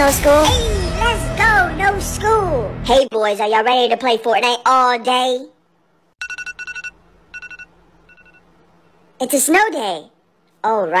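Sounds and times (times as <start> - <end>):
phone alarm beeping: 6.2 - 8.5.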